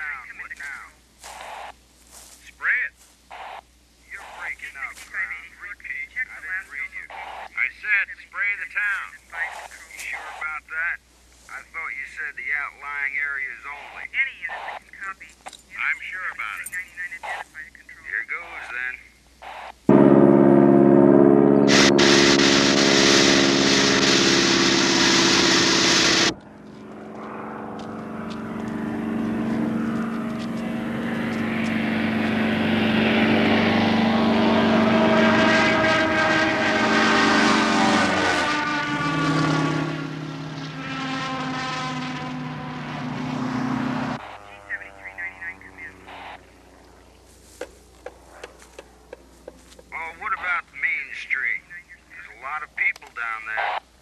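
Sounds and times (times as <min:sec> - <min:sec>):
propeller plane engine flying overhead: 0:19.9 - 0:50.3.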